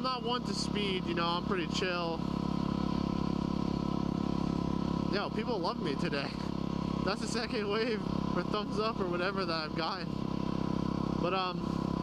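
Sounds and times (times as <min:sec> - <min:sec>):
motorcycle engine cruising: 0:00.0 - 0:12.0.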